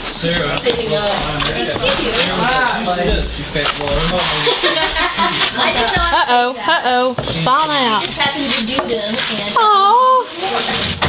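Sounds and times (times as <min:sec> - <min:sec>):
cardboard box scraping and rustling: 0:00.0 - 0:11.0
voices talking: 0:00.0 - 0:11.0.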